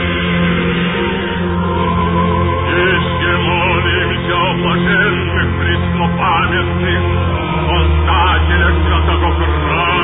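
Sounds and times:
low held drone: 0.0 - 10.0.

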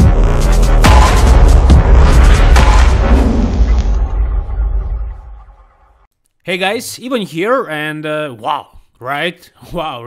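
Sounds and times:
deep bass boom: 0.0 - 6.0.

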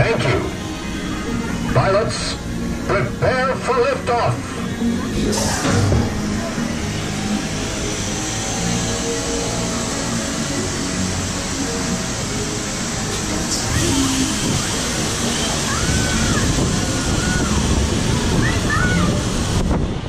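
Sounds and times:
faint music: 0.0 - 20.0
wind buffeting microphone: 13.4 - 20.0.

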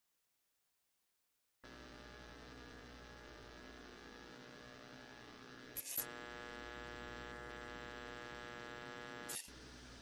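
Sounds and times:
buzzy electrical hum: 1.6 - 10.0
burst of static: 5.7 - 9.5.

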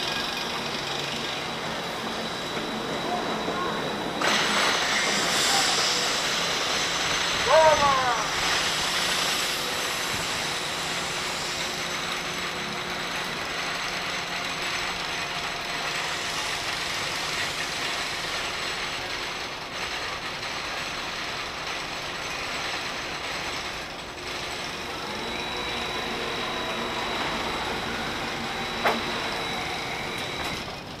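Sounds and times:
ride machinery rattling and whirring: 0.0 - 31.0.

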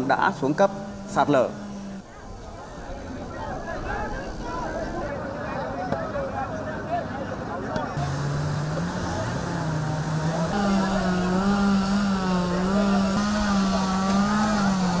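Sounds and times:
engine humming: 0.0 - 5.4, 8.0 - 15.0
voices: 0.0 - 15.0.

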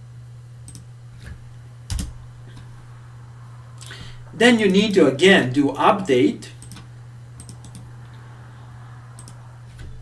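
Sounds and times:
low electrical hum: 0.0 - 10.0
mouse and keyboard clicks: 6.6 - 7.9, 9.2 - 9.9.

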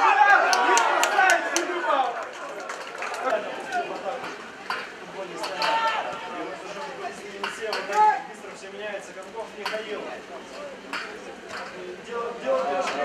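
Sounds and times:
footballers shouting: 0.0 - 8.4.

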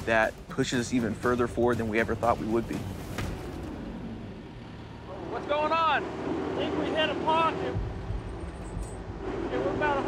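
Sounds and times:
low rumble: 7.6 - 9.9.

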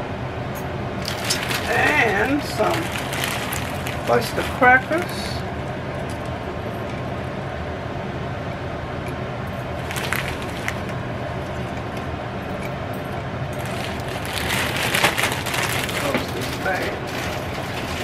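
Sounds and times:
low hum: 0.0 - 18.0
plastic bag crinkling: 1.0 - 5.4, 9.7 - 12.0, 13.6 - 18.0
crackers crumbling: 1.0 - 7.0, 9.6 - 12.2, 13.5 - 18.0.

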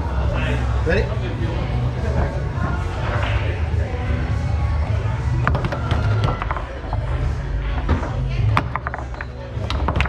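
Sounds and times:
background music: 0.0 - 10.0
foosball ball cracks: 5.4 - 7.1, 7.8 - 10.0.

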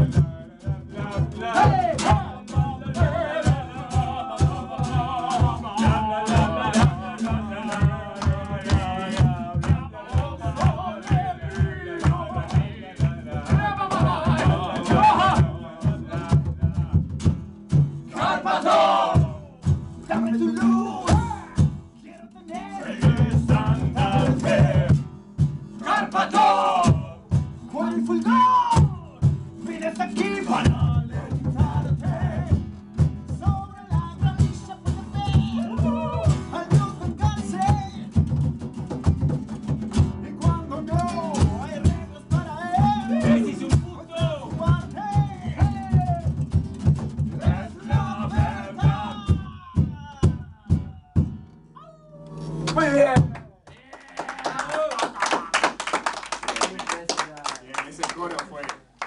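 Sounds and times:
voices singing: 0.0 - 17.2, 18.0 - 25.1, 25.8 - 32.7, 33.3 - 38.2, 40.1 - 46.4, 47.2 - 54.5
acoustic guitars strummed: 0.0 - 53.7
people clapping: 6.8 - 14.5, 52.7 - 59.0.

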